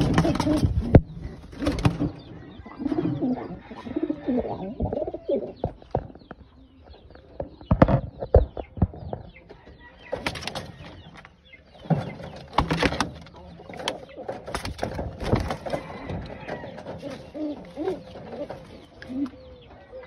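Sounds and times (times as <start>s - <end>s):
knocks and rattles in wooden boxes: 0.0s - 2.3s, 10.1s - 19.4s
pigeons cooing: 0.0s - 11.0s, 11.8s - 20.0s.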